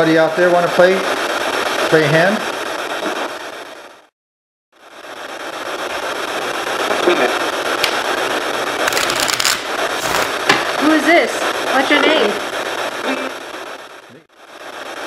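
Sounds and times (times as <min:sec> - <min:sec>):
heavy recording hiss: 0:04.8 - 0:15.0
sharp clicks and crackles: 0:06.8 - 0:10.8.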